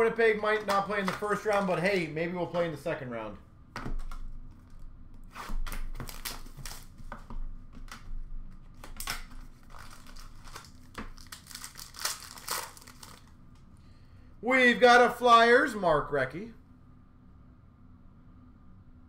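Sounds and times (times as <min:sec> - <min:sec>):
card wrappers crinkling and tearing: 0:00.2 - 0:02.1, 0:05.4 - 0:07.0, 0:08.7 - 0:13.4.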